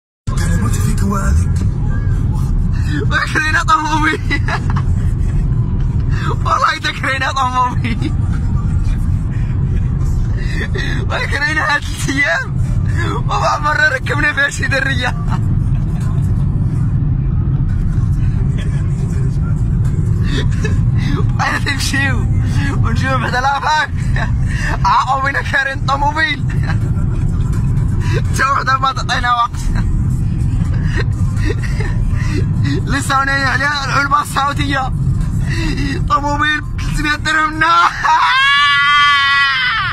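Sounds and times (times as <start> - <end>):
car road and wind noise: 0.3 - 39.9.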